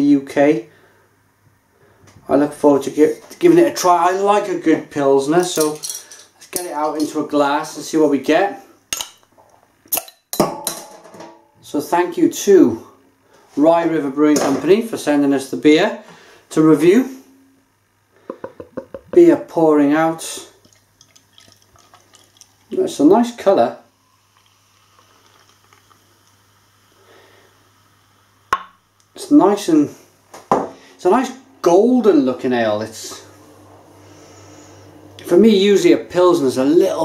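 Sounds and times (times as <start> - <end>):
beer trickling and fizzing: 19.8 - 27.7.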